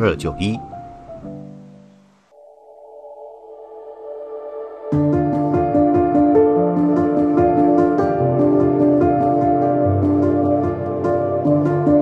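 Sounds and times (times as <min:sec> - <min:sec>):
ambient synthesizer pad: 0:01.3 - 0:12.0.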